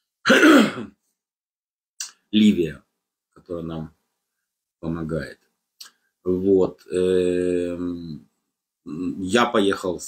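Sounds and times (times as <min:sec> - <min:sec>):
man clearing his throat: 0:00.2 - 0:01.0.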